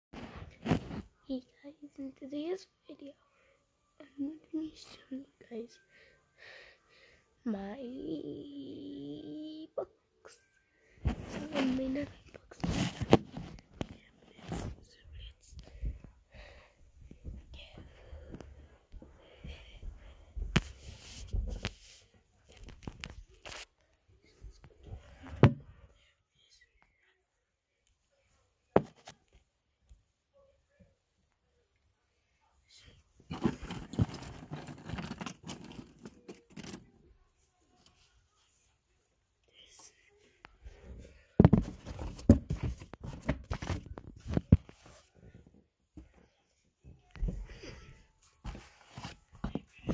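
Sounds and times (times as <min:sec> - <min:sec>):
handling noise on microphone: 0:00.2 - 0:01.2, 0:11.0 - 0:14.8
person whispering: 0:07.4 - 0:10.5, 0:11.1 - 0:16.0, 0:17.3 - 0:18.3, 0:25.8 - 0:27.3, 0:32.3 - 0:36.8, 0:39.4 - 0:41.0
breathing close to microphone: 0:15.6 - 0:22.0, 0:47.2 - 0:48.1.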